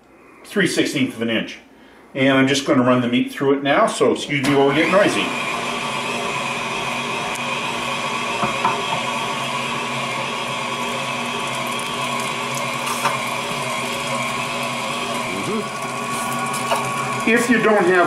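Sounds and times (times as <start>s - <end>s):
stand mixer grinding meat: 4.4s - 18.0s.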